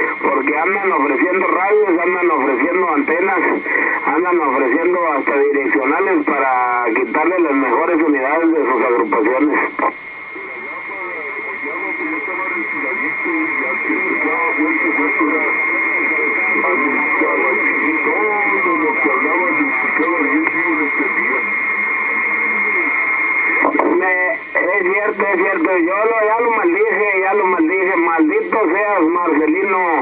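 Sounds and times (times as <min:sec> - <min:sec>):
garbled radio voice: 0:00.0 - 0:30.0.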